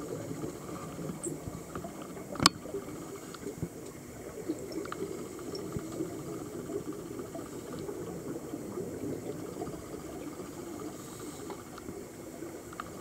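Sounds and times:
small clicks and crackles: 0:00.0 - 0:13.0
underwater air bubbling: 0:00.0 - 0:13.0.

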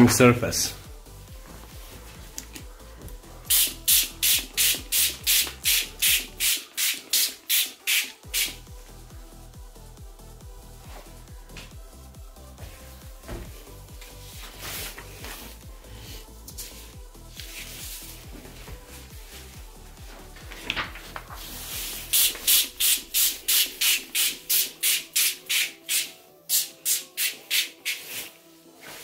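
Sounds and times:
music with steady beat: 0:00.0 - 0:29.0
spray bottle squirts hissing: 0:03.5 - 0:08.6, 0:21.8 - 0:28.3.

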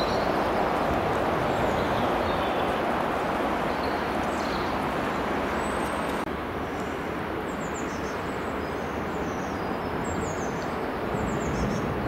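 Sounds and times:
river flowing over stones: 0:00.0 - 0:11.5.

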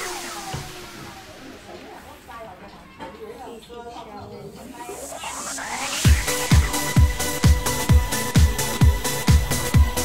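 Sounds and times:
rising whoosh riser: 0:04.8 - 0:07.0.

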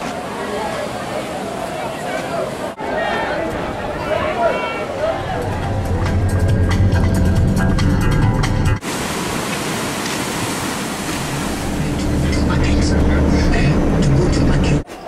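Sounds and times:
surf breaking over rocks: 0:08.8 - 0:14.4
vehicle rumbling along street: 0:11.2 - 0:15.0.

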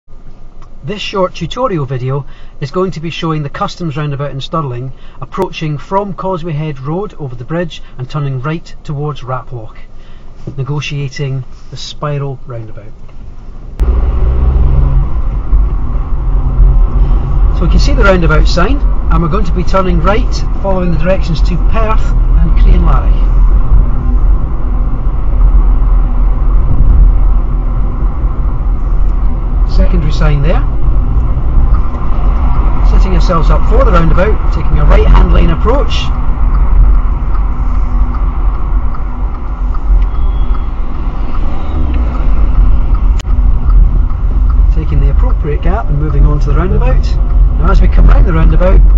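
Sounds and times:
car engine and road rumble: 0:00.0 - 0:48.9.

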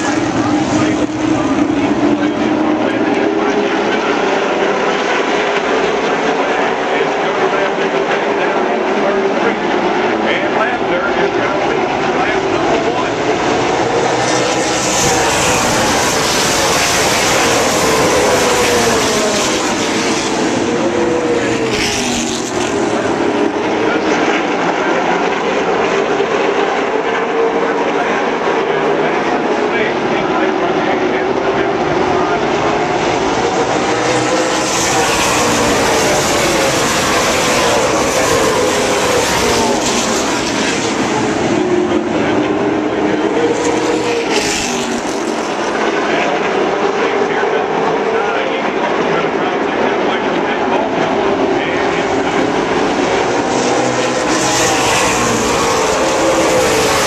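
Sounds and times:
stock car engines racing: 0:00.0 - 0:57.0.

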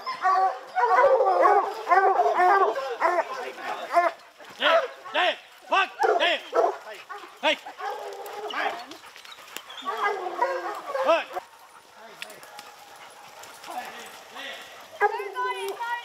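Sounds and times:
hounds whining and bawling: 0:00.0 - 0:05.2, 0:06.0 - 0:15.3.

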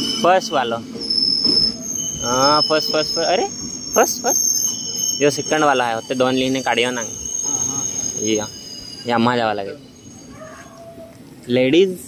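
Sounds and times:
train wheels squealing: 0:00.0 - 0:11.2.

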